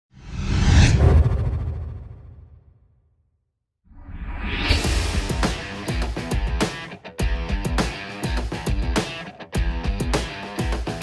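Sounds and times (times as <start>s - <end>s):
whoosh with deep rumble: 0.2s - 2.8s.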